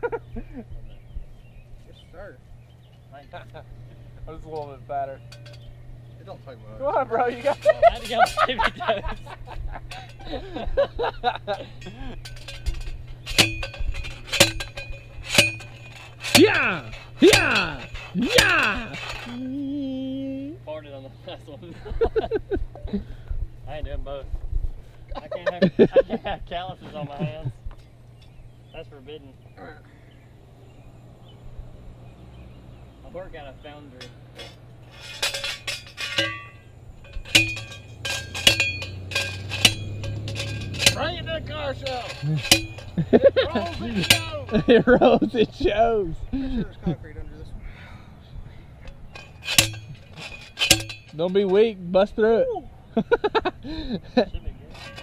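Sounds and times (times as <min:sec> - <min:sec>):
steady low hum: 0:00.0 - 0:55.0
hammer clanging on metal post: 0:04.4 - 0:05.8, 0:07.2 - 0:10.6, 0:11.3 - 0:19.4, 0:33.7 - 0:45.6, 0:48.8 - 0:51.8, 0:54.7 - 0:55.0.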